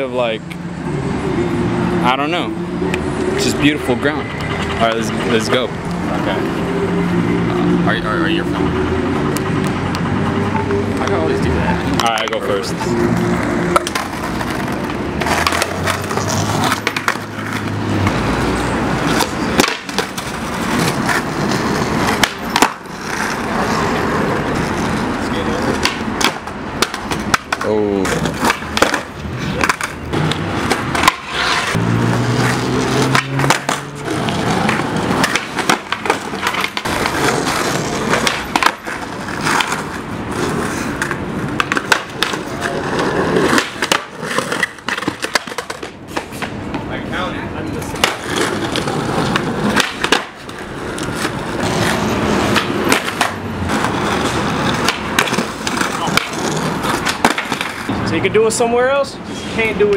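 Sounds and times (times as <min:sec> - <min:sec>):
skateboards rolling on stone tiles: 0:00.0 - 0:59.9
skateboard clacks: 0:13.7 - 0:18.2, 0:19.0 - 0:31.8, 0:32.4 - 0:46.9, 0:47.8 - 0:57.9.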